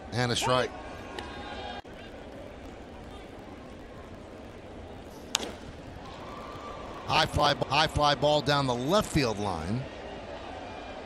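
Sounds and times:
murmur of crowd: 0:00.0 - 0:11.0
baseball bat cracking on ball: 0:05.3 - 0:05.7.

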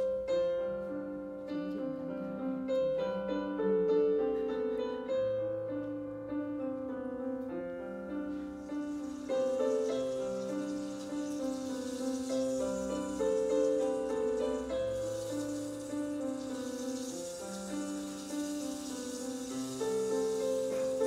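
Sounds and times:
piano playing slow chords: 0:00.0 - 0:21.0.

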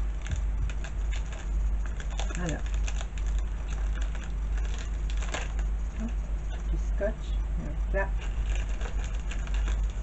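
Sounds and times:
paper card crackling: 0:00.0 - 0:06.3, 0:08.1 - 0:10.0
steady low hum: 0:00.0 - 0:10.0.

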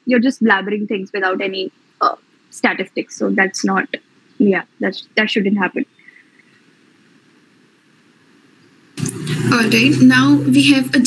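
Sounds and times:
microphone room noise and hiss: 0:00.0 - 0:11.0.

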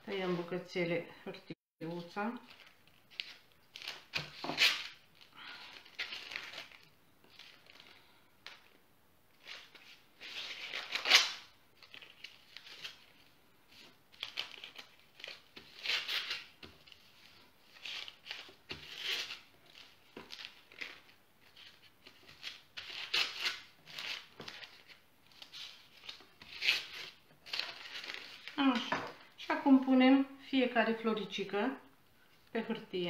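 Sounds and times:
baking paper rustling: 0:01.9 - 0:08.8, 0:09.4 - 0:29.8.

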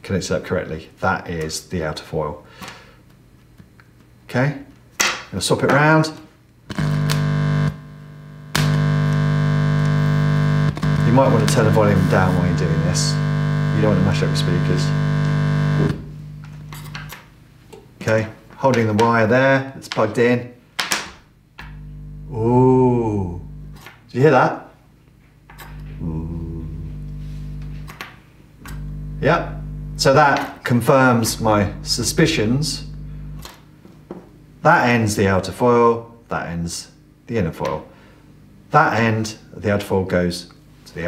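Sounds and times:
loud mains hum through speaker: 0:08.1 - 0:17.3, 0:28.6 - 0:41.0.

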